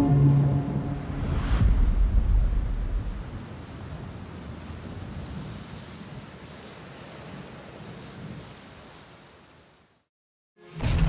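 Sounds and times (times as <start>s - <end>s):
low rumble: 0.0s - 3.6s
steady rain falling: 0.0s - 10.1s.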